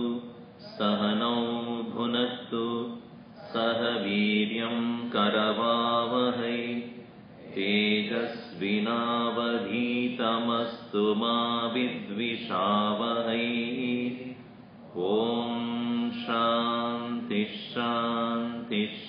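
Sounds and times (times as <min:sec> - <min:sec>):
man chanting: 0:00.0 - 0:19.0.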